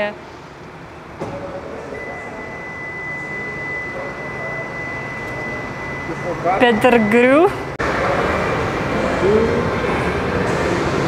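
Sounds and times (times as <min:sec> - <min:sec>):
thin high-pitched tone: 0:02.0 - 0:07.6.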